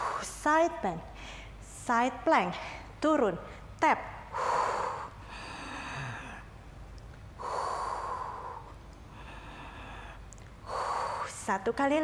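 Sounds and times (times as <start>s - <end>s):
woman breathing through mouth: 7.4s - 11.4s.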